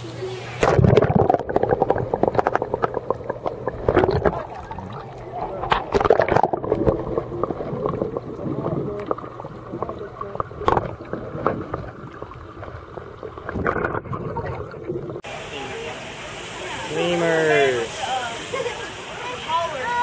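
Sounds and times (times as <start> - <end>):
water sloshing and gurgling: 0.6 - 15.3
short water splashes: 1.8 - 15.3
chatter of voices: 14.2 - 20.0.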